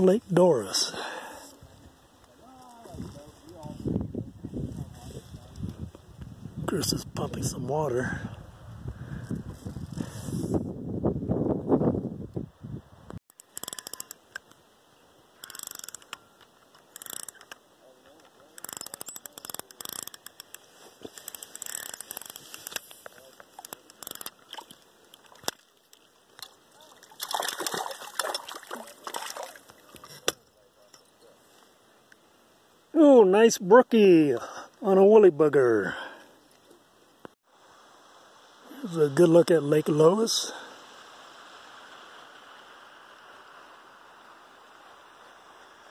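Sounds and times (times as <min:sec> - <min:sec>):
fish splashing in water: 0:24.3 - 0:29.9.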